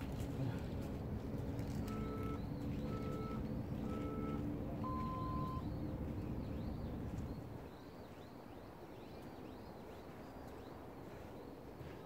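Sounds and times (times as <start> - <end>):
steady low rumble: 0.0 - 7.8
high electronic beeps: 1.9 - 5.7
longer lower beep: 1.9 - 5.7.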